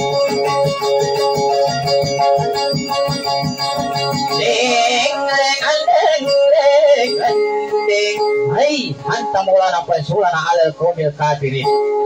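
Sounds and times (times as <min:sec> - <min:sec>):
guitar accompaniment: 0:00.0 - 0:12.0
person singing ornamented melody: 0:03.9 - 0:08.3.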